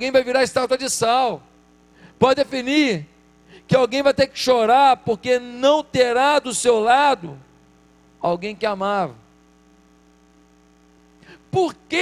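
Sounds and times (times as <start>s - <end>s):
electrical mains hum: 0.0s - 12.0s
person speaking: 8.2s - 9.3s, 11.3s - 12.0s.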